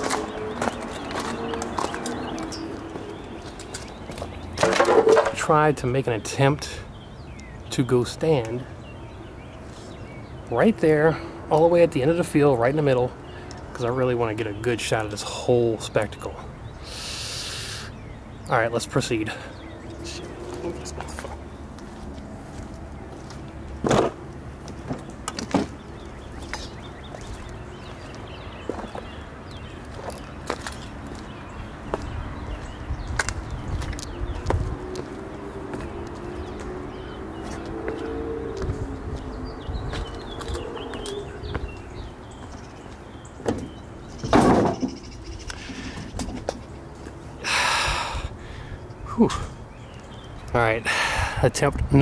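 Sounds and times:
knocks and clicks on debris: 4.6 - 5.4.

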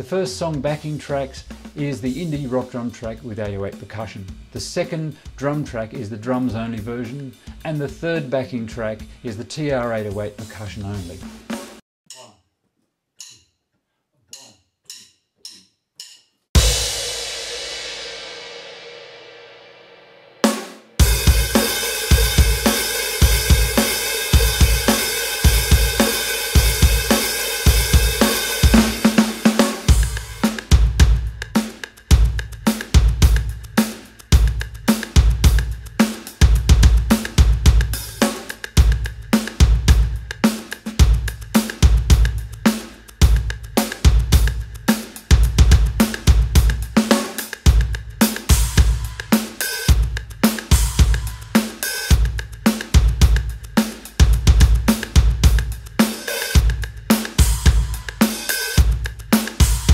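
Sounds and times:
drum beat: 0.0 - 12.3, 16.6 - 19.2, 20.4 - 59.9
cymbal crash: 16.6 - 32.4.

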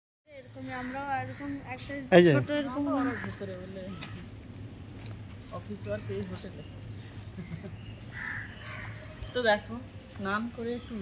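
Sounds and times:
crow cawing: 0.6 - 4.3, 7.4 - 9.4.

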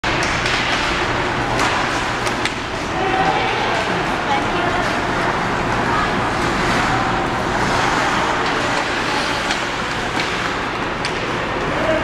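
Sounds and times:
hockey sticks and puck clacking: 0.0 - 4.0, 6.4 - 12.0
spectators' voices echoing: 0.1 - 12.0.

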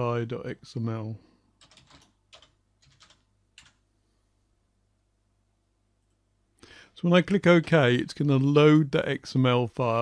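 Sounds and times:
typing on computer keyboard: 1.6 - 3.8.

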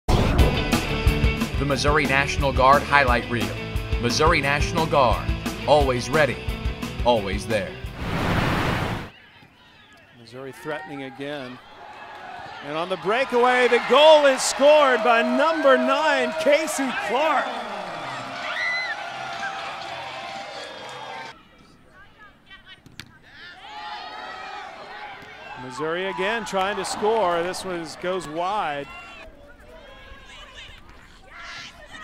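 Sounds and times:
loud burst of rushing noise: 7.9 - 9.1.

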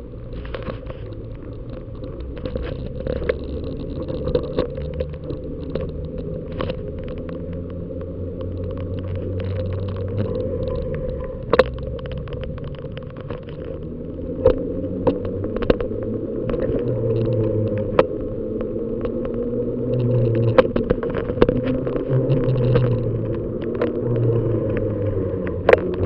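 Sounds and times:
bicycle road rumble: 0.0 - 26.0
wind noise on microphone: 0.0 - 26.0
clicks and rattles: 0.2 - 26.0.

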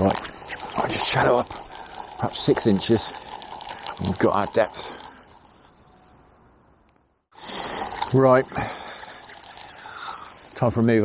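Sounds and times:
flowing water hiss: 0.0 - 5.8, 7.4 - 11.0.

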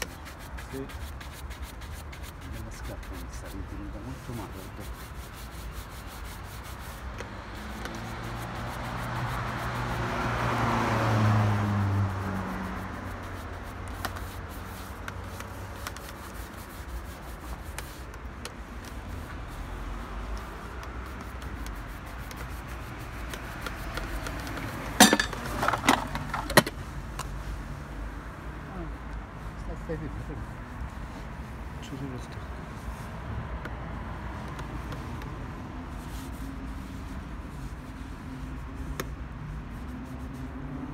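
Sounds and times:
shoe brush rubbing leather: 0.0 - 40.9.

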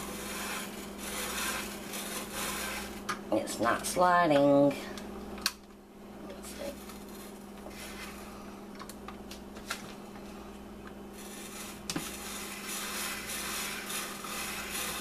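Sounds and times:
blade rasping through potato: 0.0 - 3.1, 6.5 - 8.3, 11.1 - 15.0.

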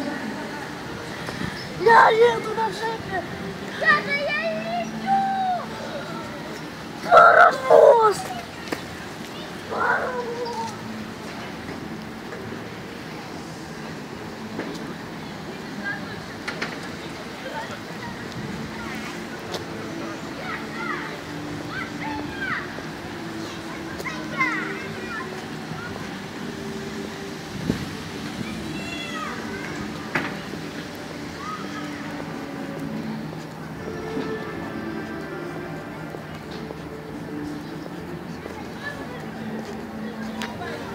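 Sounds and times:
faint voices: 0.0 - 40.9
steady background noise: 0.0 - 40.9
child calling out: 1.8 - 2.6, 3.8 - 5.8, 7.1 - 8.4, 9.7 - 10.8.

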